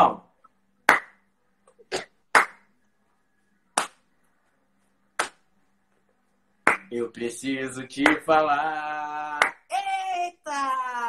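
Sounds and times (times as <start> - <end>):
hand claps: 0.9 - 1.2, 2.3 - 2.7, 3.8 - 4.0, 5.2 - 5.4, 6.6 - 6.9, 8.0 - 8.3, 9.4 - 9.6.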